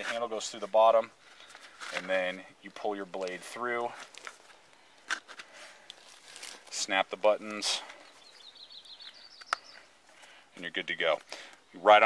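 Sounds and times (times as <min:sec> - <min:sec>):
nylon sheath rustling and scraping: 0:00.0 - 0:02.5, 0:03.1 - 0:08.4
soft handling noises: 0:00.0 - 0:08.4.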